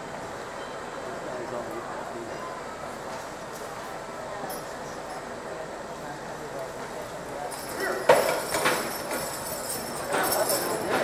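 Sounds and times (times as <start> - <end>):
murmur of voices: 0.7 - 11.0.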